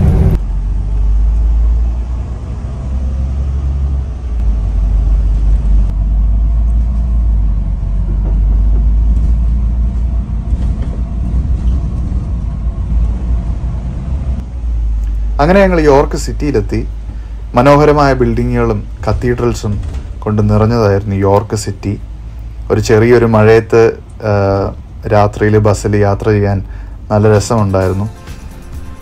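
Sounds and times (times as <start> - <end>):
bus engine rumble: 0.0 - 29.0.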